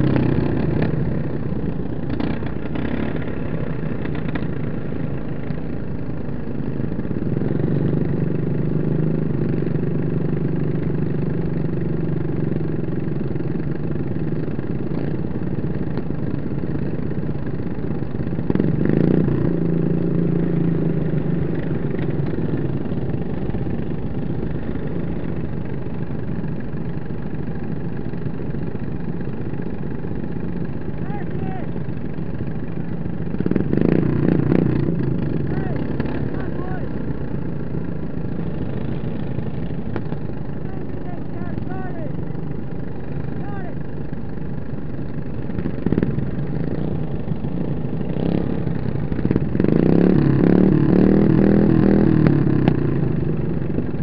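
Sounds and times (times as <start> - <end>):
small lawn mower engines idling: 0.0 - 54.0.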